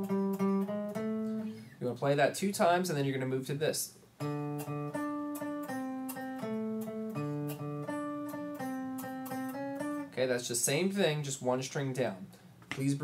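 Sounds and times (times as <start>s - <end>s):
electric guitar blues riff: 0.0s - 1.7s, 4.2s - 10.2s.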